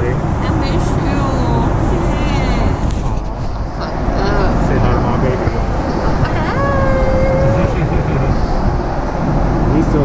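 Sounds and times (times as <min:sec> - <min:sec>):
faint background voices: 0:00.0 - 0:08.7
aircraft cabin engine and airflow rush: 0:00.0 - 0:10.0.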